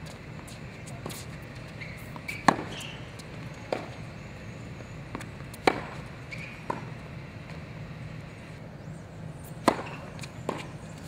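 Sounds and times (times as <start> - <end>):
tennis ball bouncing on hard court: 0.0 - 4.0, 5.1 - 7.6, 9.4 - 10.8
racket striking tennis ball: 2.0 - 4.0, 5.1 - 7.0, 9.5 - 10.8.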